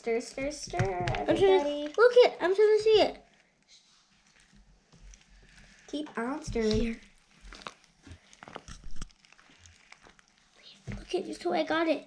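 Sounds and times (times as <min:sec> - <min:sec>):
faint slime stirring: 0:00.0 - 0:12.0.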